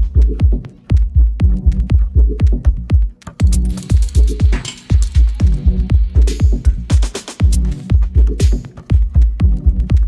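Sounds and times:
minimal techno music: 0.0 - 10.0.

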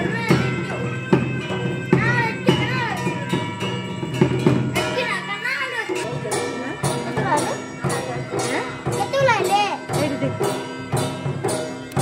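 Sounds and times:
child calling out: 0.0 - 0.9, 1.7 - 3.5, 4.8 - 6.1, 9.0 - 10.0
percussion beat: 0.0 - 12.0
street festival music: 0.0 - 12.0.

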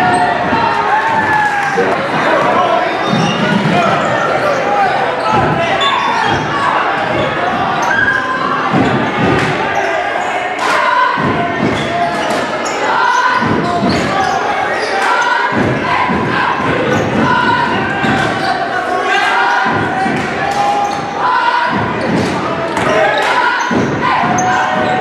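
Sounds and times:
spectators' voices: 0.0 - 25.0.

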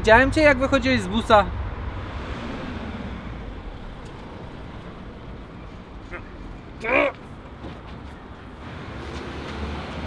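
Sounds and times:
passing traffic rumble: 0.0 - 10.0.

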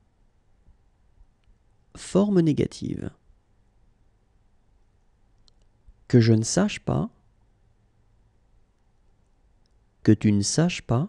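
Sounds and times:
faint short clicks: 5.4 - 5.8.

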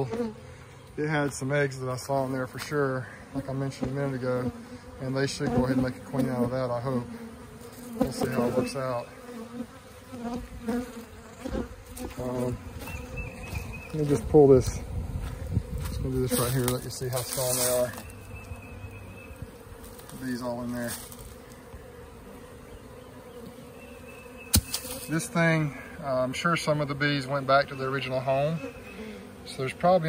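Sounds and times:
hum of many bees: 0.0 - 30.0
single bee buzzing past: 0.0 - 30.0.

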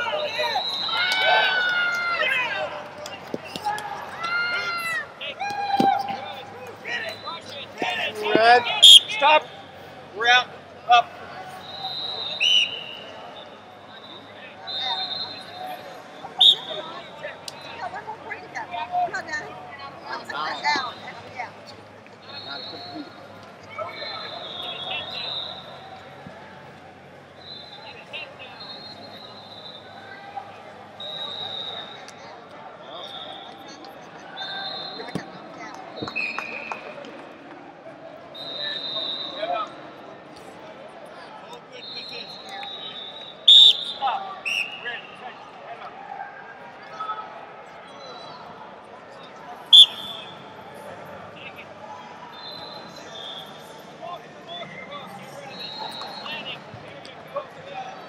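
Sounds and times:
murmur of large hall: 0.0 - 58.0.

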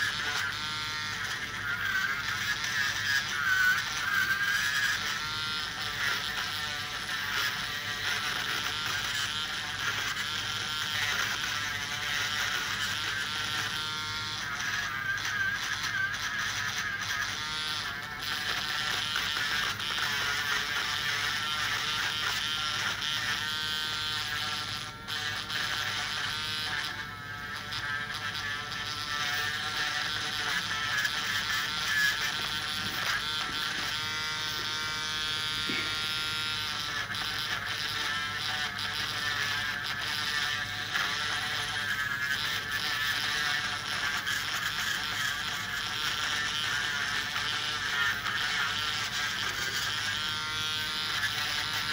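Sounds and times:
rotary nail drill buzzing: 0.0 - 51.9.

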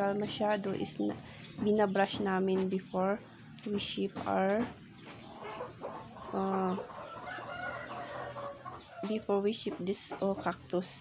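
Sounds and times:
faint rooster crowing: 6.9 - 9.2.

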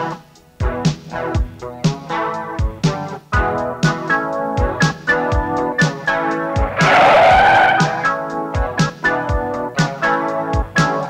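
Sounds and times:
organ music with steady beat: 0.0 - 11.0
car tyres screeching: 6.5 - 8.3.

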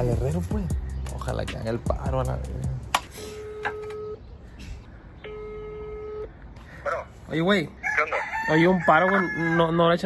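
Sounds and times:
telephone ringback tone: 3.4 - 4.3, 5.2 - 6.3.

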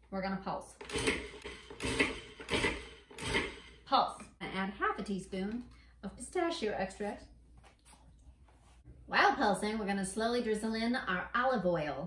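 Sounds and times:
food processor whirring: 0.8 - 3.9.

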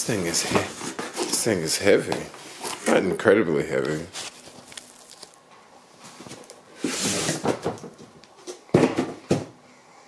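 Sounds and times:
cardboard box scraping and rustling: 6.8 - 7.6
boxes knocking down: 6.9 - 9.6.

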